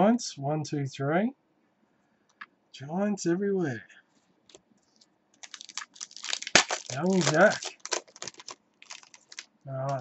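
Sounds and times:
cards and wrapper crinkling: 0:04.5 - 0:10.0.

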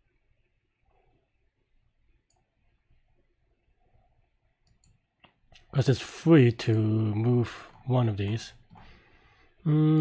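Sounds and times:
faint computer mouse clicks: 0:04.6 - 0:05.7.

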